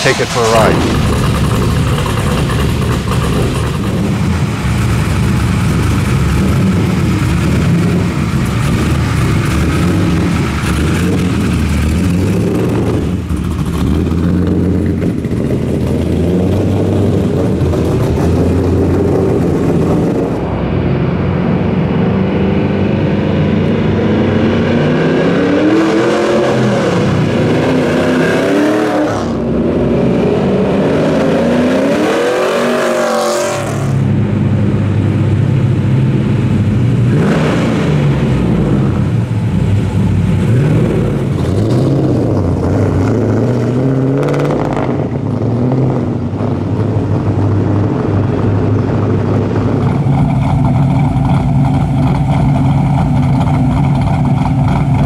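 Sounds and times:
car engine exhaust revving: 0:00.0 - 0:55.0.

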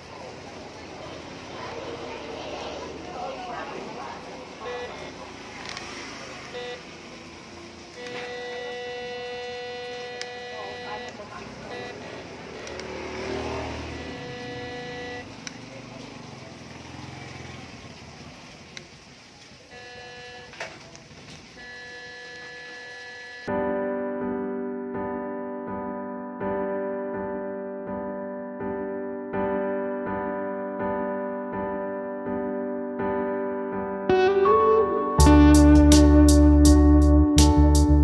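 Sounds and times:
held electronic tones: 0:04.6 - 0:05.0, 0:06.5 - 0:06.8, 0:08.0 - 0:12.8, 0:13.8 - 0:15.3, 0:21.6 - 0:23.5.

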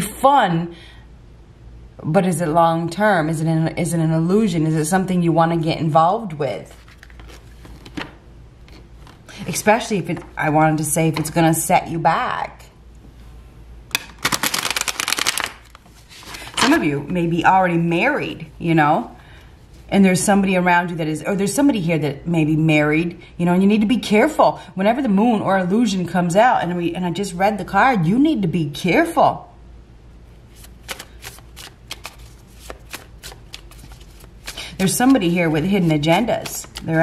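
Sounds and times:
cards being shuffled: 0:06.7 - 0:09.3, 0:13.9 - 0:16.8, 0:30.5 - 0:37.0.

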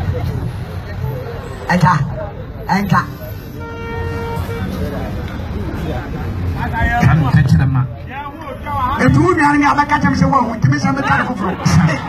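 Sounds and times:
crowd noise: 0:00.0 - 0:12.0
low traffic rumble: 0:00.0 - 0:12.0
vehicle horn: 0:03.5 - 0:05.0.

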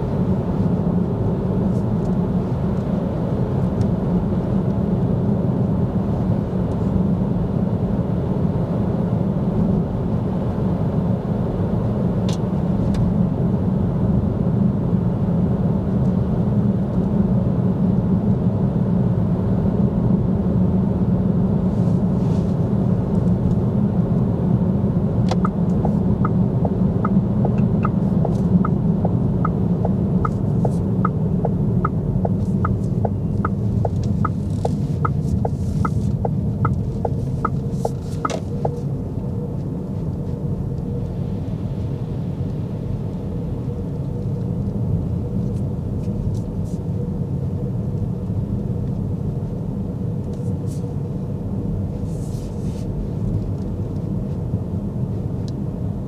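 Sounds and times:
road and tyre rumble: 0:00.0 - 0:56.0
turn indicator ticking: 0:25.3 - 0:38.8.

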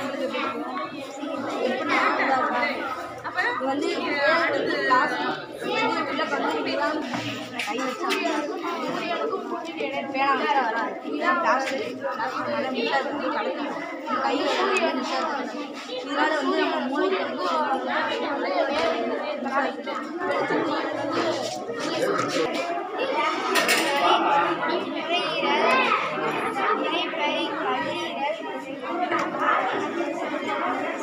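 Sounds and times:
chatter of young voices: 0:00.0 - 0:31.0.

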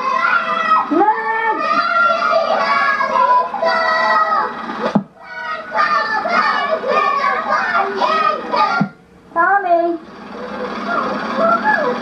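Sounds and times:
young children chattering: 0:10.3 - 0:12.0.

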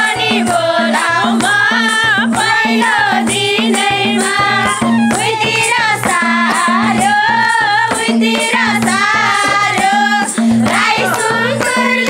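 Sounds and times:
hand drum beat: 0:00.0 - 0:12.0
women singing folk song: 0:00.0 - 0:12.0
hand clapping: 0:08.4 - 0:12.0.

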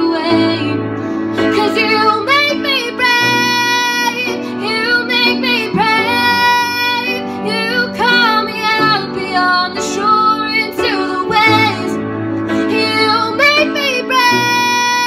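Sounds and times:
woman singing worship song: 0:00.0 - 0:15.0.

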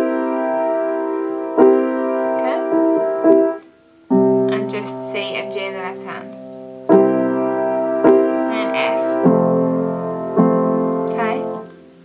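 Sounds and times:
piano chord ringing: 0:00.0 - 0:12.0.

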